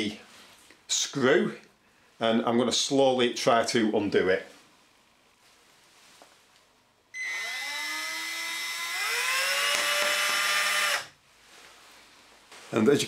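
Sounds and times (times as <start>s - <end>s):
cordless drill motor whine: 7.2s - 11.1s.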